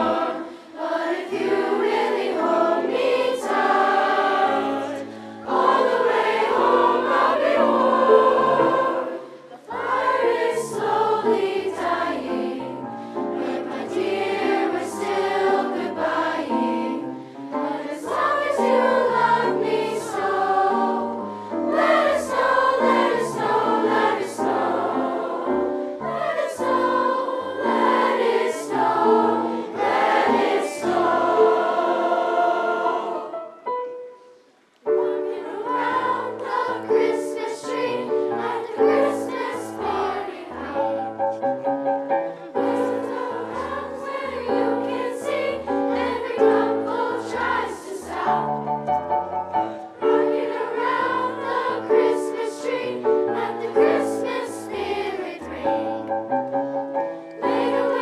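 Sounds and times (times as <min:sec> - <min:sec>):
children's choir singing: 0:00.0 - 0:58.0.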